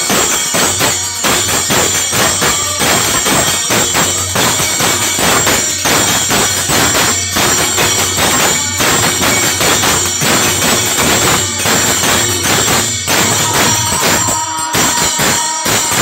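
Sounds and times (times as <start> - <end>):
hand drum rhythm: 0.0 - 16.0
man singing: 0.0 - 16.0
small hand cymbals jangling: 0.0 - 16.0.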